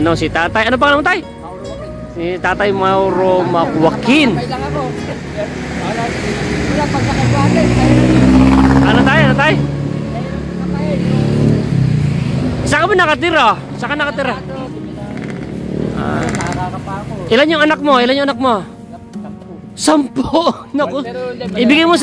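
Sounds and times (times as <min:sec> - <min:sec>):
motor vehicle passing by: 0:02.2 - 0:17.4.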